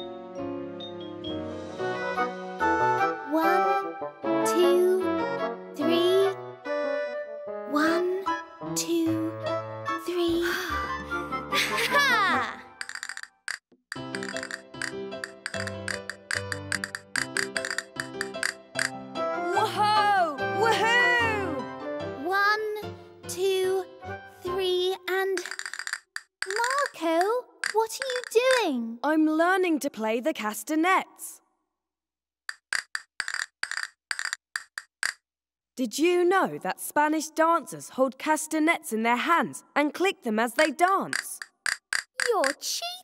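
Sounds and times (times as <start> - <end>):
castanet clicks: 12.8 - 19.0, 25.4 - 28.6, 32.5 - 35.2, 40.6 - 42.6.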